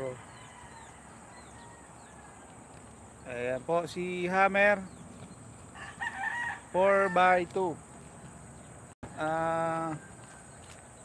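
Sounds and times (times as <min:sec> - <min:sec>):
rooster crowing: 0:00.0 - 0:02.6, 0:05.7 - 0:07.6, 0:09.0 - 0:10.6.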